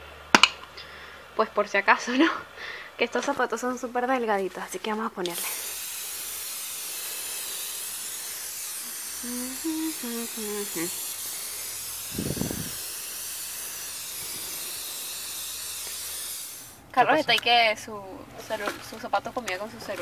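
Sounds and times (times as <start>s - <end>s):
aerosol spray hissing: 4.8s - 16.8s.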